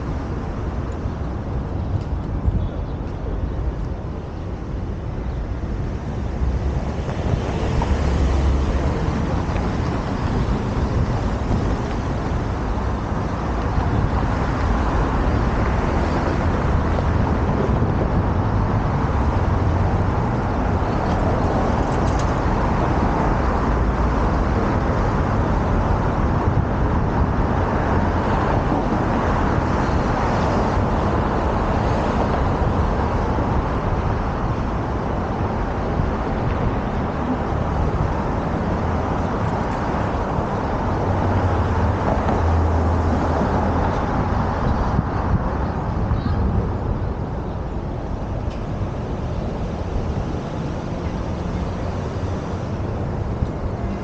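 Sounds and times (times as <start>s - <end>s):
road traffic: 0.0s - 54.0s
wind rumbling on microphone: 0.0s - 54.0s.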